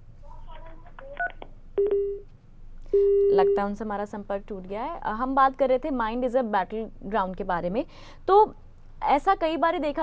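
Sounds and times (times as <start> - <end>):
telephone beeps: 1.1 - 2.2, 3.0 - 3.6.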